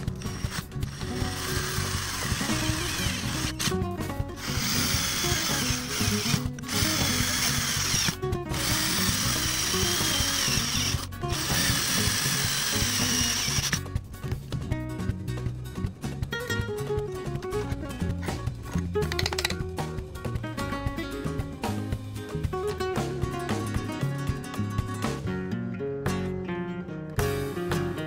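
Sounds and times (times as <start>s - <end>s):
cordless drill boring through pipe: 0.0s - 3.7s, 4.4s - 13.8s.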